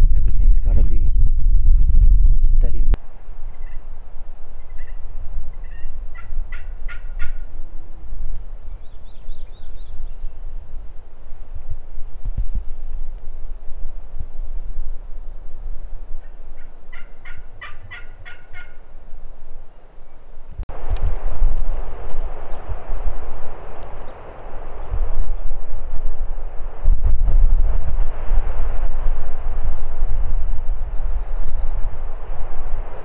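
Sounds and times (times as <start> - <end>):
turkey gobbling: 4.7 - 5.0, 5.6 - 7.5, 16.2 - 18.8.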